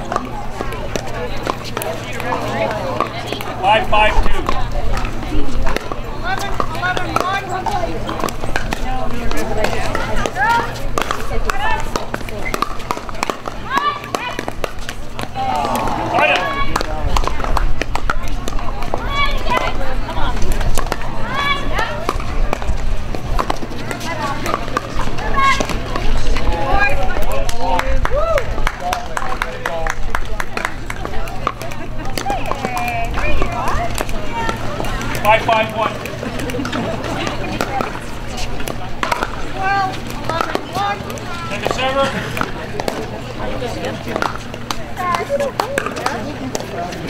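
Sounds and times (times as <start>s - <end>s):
spectators talking: 0.0s - 47.0s.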